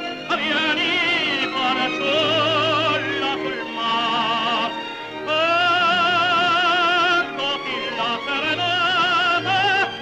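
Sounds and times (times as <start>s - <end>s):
operatic tenor singing: 0.0s - 10.0s
orchestral accompaniment: 0.0s - 10.0s.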